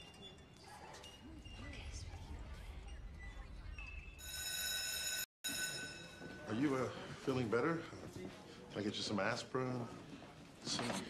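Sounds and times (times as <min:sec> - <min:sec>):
high-pitched ringing tone: 0:03.8 - 0:06.5.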